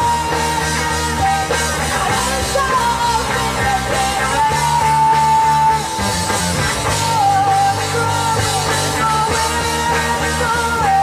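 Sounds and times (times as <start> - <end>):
drums: 0.0 - 11.0
electric guitar: 0.0 - 11.0
person singing: 0.0 - 11.0.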